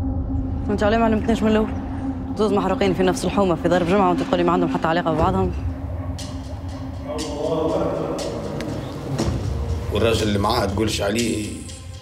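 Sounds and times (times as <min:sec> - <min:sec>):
low steady rumble: 0:00.0 - 0:06.7
man's voice: 0:07.0 - 0:12.0.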